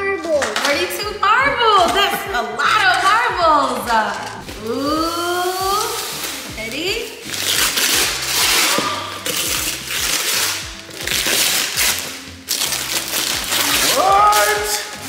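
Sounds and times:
background music with steady beat: 0:00.0 - 0:15.0
wrapping paper ripping: 0:07.2 - 0:15.0.

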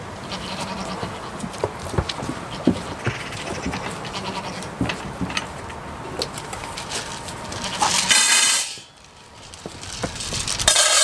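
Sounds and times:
goat bleating: 0:00.2 - 0:05.3, 0:07.4 - 0:08.9.

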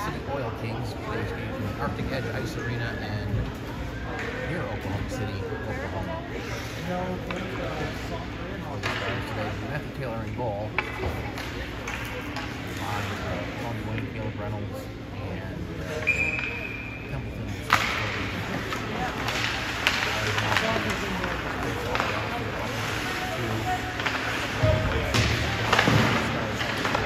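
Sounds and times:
hockey sticks cracking: 0:10.6 - 0:13.3, 0:17.5 - 0:27.0
skate blades scraping ice: 0:18.5 - 0:24.8.

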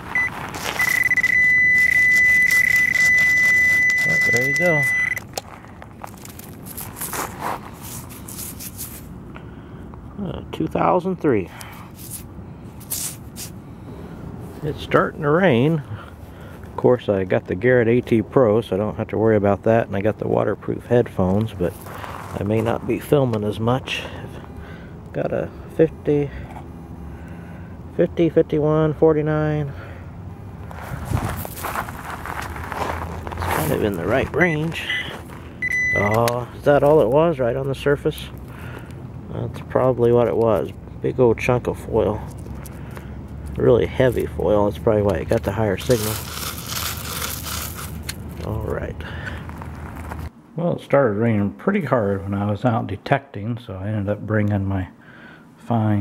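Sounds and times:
high pinpointer beep: 0:00.0 - 0:05.3, 0:34.4 - 0:36.3
gravel scraping and crunching: 0:00.0 - 0:09.2, 0:11.4 - 0:17.7, 0:20.8 - 0:24.6, 0:29.7 - 0:50.3.

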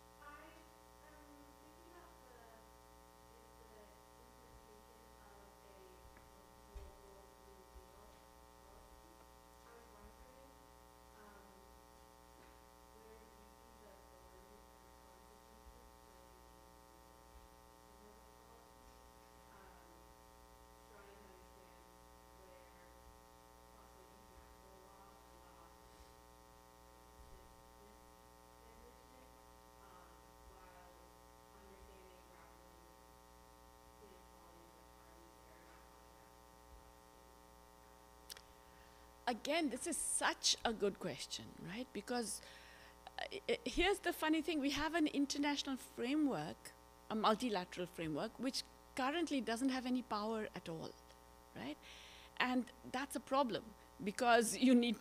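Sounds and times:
electrical mains hum: 0:00.0 - 0:55.0.

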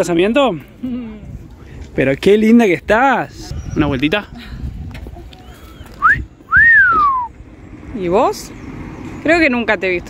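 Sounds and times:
person wolf whistling: 0:05.4 - 0:07.4.

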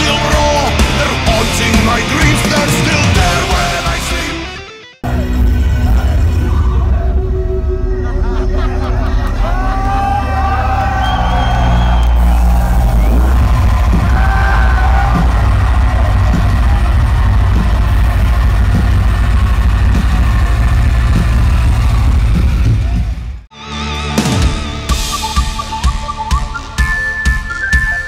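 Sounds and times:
heavy metal band through pa: 0:00.0 - 0:28.0
crowd shouting: 0:05.0 - 0:22.0.

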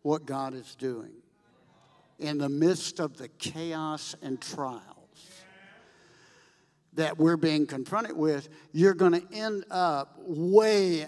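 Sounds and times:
man's quick breath: 0:05.8 - 0:06.8.

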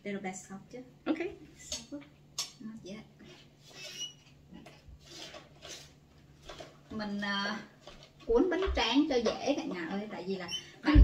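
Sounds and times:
rustling and utensil handling: 0:03.2 - 0:10.5
high squeak: 0:03.7 - 0:04.2.

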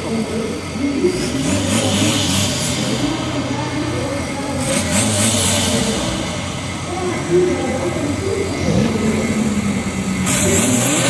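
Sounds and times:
car engines revving: 0:00.0 - 0:11.0.

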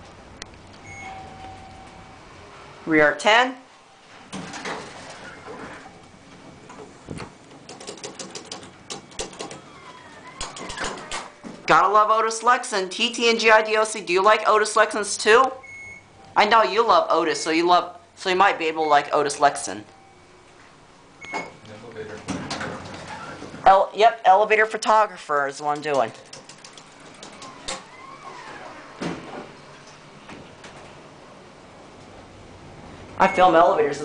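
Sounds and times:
elevator buttons clicking: 0:07.5 - 0:09.7, 0:25.7 - 0:27.8
person speaking: 0:11.7 - 0:15.6, 0:16.3 - 0:19.9, 0:23.6 - 0:26.2, 0:33.2 - 0:34.0.

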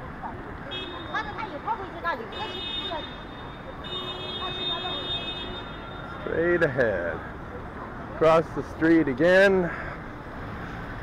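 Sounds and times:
street traffic noise: 0:00.0 - 0:11.0
high-pitched vehicle horn: 0:02.3 - 0:06.1.

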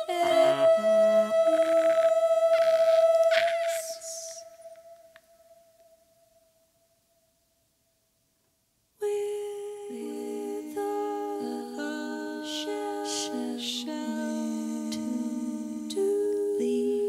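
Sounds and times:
female voices sliding through notes: 0:00.1 - 0:03.0
female voice holding high note: 0:00.2 - 0:03.0.

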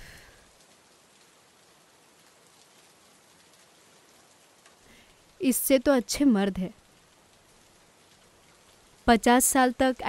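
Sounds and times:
faint steady rain: 0:00.0 - 0:10.0.

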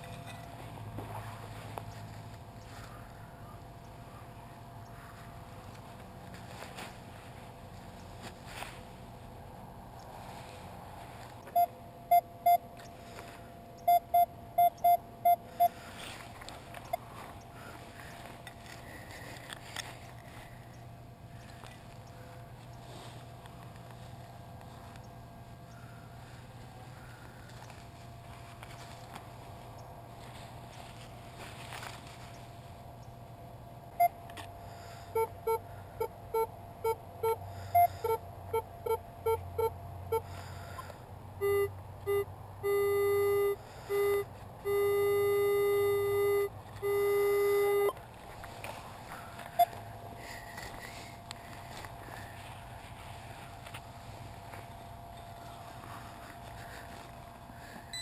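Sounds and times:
metal detector beeping: 0:11.5 - 0:12.9, 0:13.8 - 0:15.8, 0:34.0 - 0:34.4, 0:35.1 - 0:40.3, 0:41.4 - 0:48.0, 0:49.4 - 0:50.9, 0:57.6 - 0:58.0.

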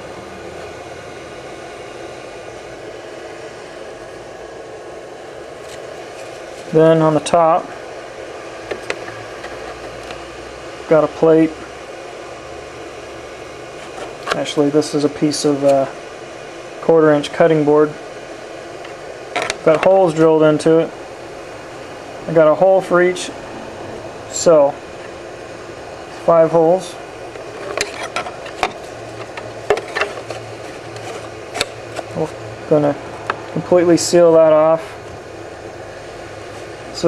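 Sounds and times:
steady low hum: 0:00.0 - 0:37.0
low rumble: 0:23.2 - 0:25.0.

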